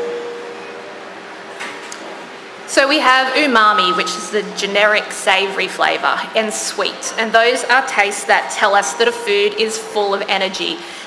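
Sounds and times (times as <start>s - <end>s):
faint held tone: 0.0s - 1.0s, 3.6s - 4.6s
steady hum: 0.0s - 11.0s.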